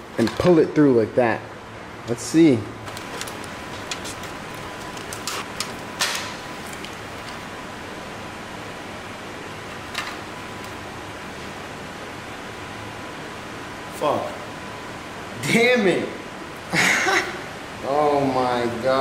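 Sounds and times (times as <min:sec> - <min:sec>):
room noise hiss: 0:00.0 - 0:19.0
tape crackling and clicking: 0:02.8 - 0:07.5, 0:09.7 - 0:10.8.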